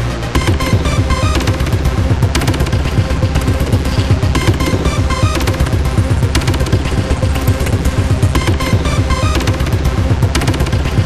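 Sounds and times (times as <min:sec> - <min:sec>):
distorted guitar: 0:00.4 - 0:11.0
rapid kick drum pattern: 0:00.4 - 0:11.0.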